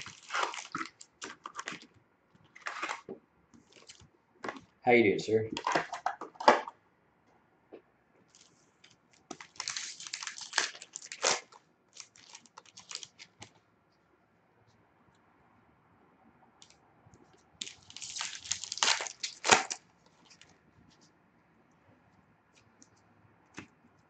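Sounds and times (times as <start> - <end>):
wrapper tearing and crinkling: 0.0 - 1.9, 2.6 - 3.1, 9.2 - 13.5, 17.6 - 20.4.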